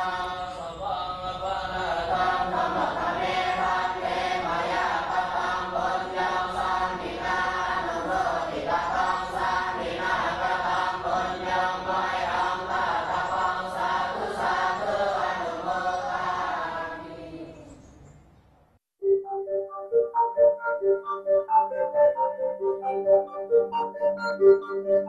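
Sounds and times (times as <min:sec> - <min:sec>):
group chanting in unison: 0:00.0 - 0:17.8.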